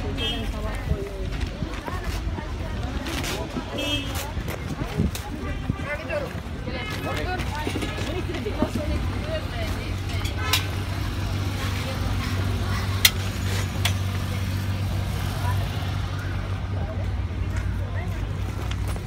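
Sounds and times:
voices talking: 0:00.0 - 0:18.9
vehicle noise hum: 0:00.0 - 0:19.0.

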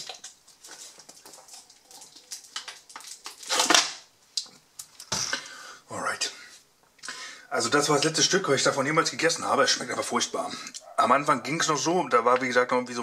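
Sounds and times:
plastic bottle crinkling: 0:00.0 - 0:05.4.

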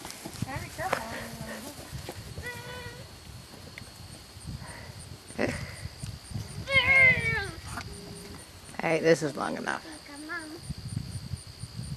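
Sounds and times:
puppies whimpering: 0:06.7 - 0:08.4
puppy whining: 0:06.7 - 0:08.4.

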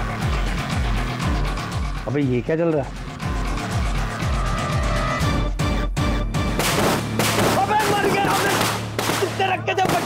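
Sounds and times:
firecrackers bursting: 0:06.6 - 0:10.0.

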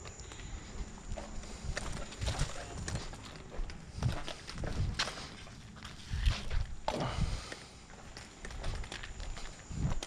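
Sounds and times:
uneven footsteps with scuffs: 0:00.0 - 0:10.0.

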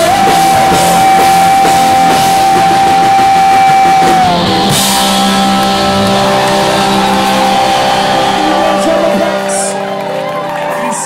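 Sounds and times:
distorted electric guitars droning: 0:00.0 - 0:11.0.

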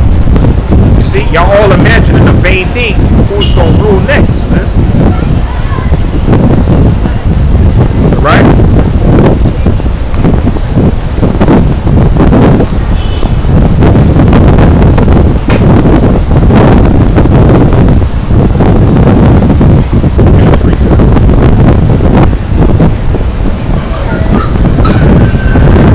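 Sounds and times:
wind buffeting microphone: 0:00.0 - 0:25.9.

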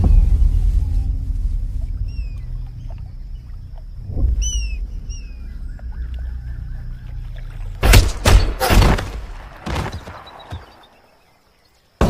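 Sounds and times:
low rumbling drone: 0:00.0 - 0:07.8
high descending bird chirps: 0:04.2 - 0:06.6.

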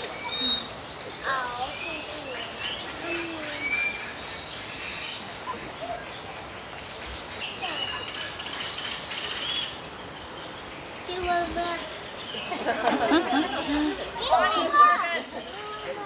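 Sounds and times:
small birds chirping and whistling: 0:00.0 - 0:12.7
outdoor background hiss: 0:00.0 - 0:16.0.

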